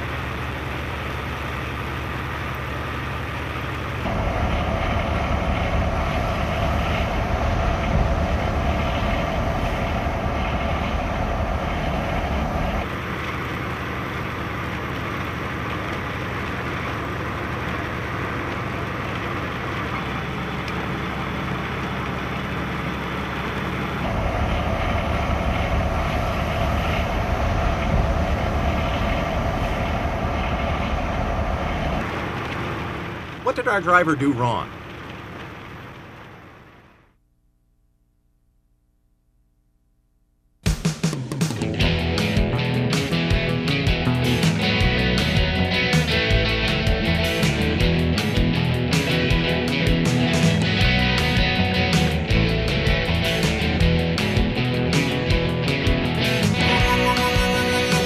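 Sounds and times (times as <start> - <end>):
truck engine drone: 0.0 - 37.2, 40.8 - 58.0.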